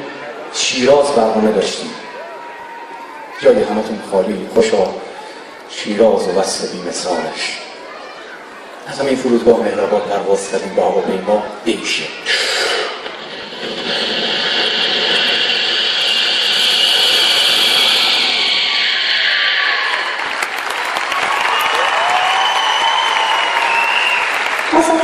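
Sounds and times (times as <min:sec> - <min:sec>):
audience applauding: 0:13.0 - 0:25.0
whistling: 0:14.8 - 0:24.5.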